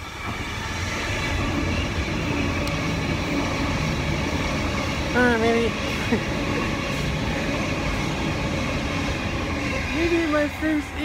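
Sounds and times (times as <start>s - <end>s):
train running: 0.0s - 11.0s.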